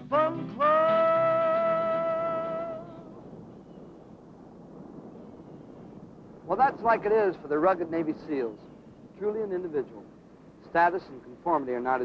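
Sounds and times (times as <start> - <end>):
faint steady rushing noise: 0.0 - 12.0.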